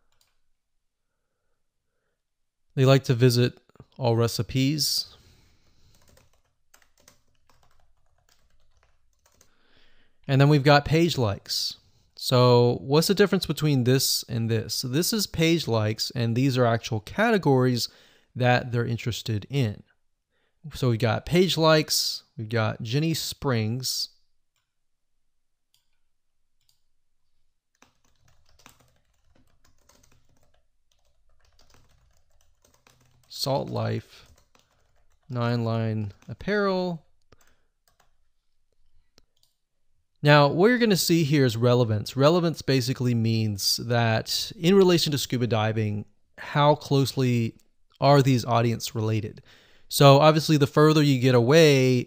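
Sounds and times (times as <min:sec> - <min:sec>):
faint keyboard typing: 0:00.0 - 0:00.4, 0:05.6 - 0:09.6, 0:25.7 - 0:26.9, 0:27.7 - 0:39.6.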